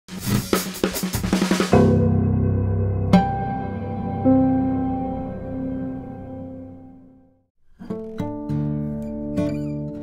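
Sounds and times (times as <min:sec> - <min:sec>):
drum fill on a kit: 0:00.1 - 0:04.6
sustained low chord: 0:01.8 - 0:07.4.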